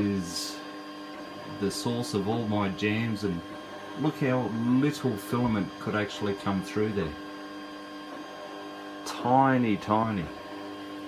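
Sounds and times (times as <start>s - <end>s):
printer humming: 0.0s - 11.0s.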